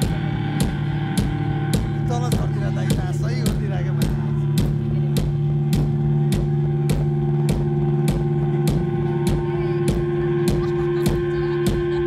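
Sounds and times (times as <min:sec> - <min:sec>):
drum strikes: 0:00.0 - 0:12.0
low guitar and bass chord: 0:00.0 - 0:12.0.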